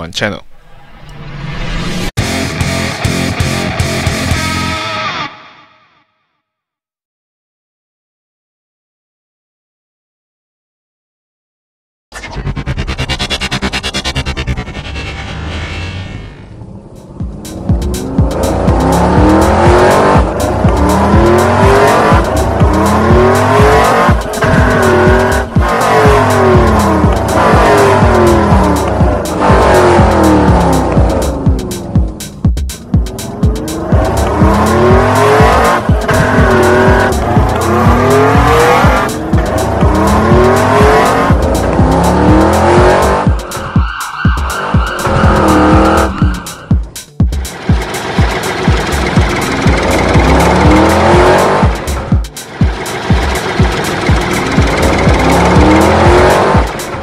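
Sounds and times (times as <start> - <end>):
race car engine revving: 12.2 - 57.0
music with pulsing beat: 17.0 - 57.0.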